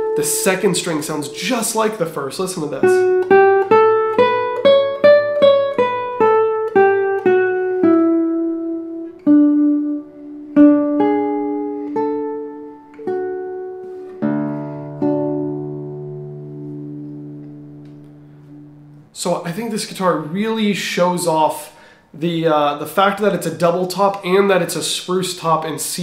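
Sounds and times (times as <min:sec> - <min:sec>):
classical guitar plucked notes: 0:00.0 - 0:19.1
guitar chord ringing: 0:00.0 - 0:19.2.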